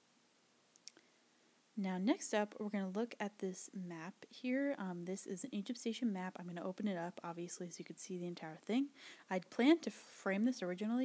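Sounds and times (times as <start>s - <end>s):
woman speaking: 1.8s - 11.0s.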